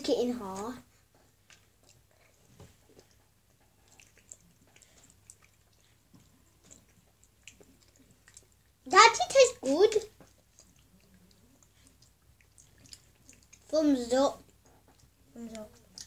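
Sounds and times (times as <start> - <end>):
chewing candy: 0.4 - 16.0.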